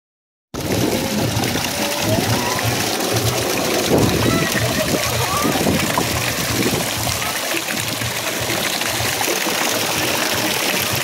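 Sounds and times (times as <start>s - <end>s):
fountain jets spraying: 0.6s - 11.0s
pool water splashing: 0.6s - 11.0s
people's voices: 0.8s - 11.0s.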